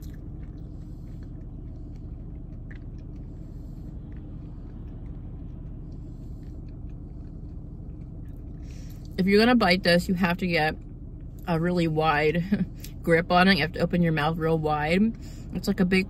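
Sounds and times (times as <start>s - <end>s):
person chewing: 0.0s - 9.2s
steady low hum: 0.0s - 16.0s.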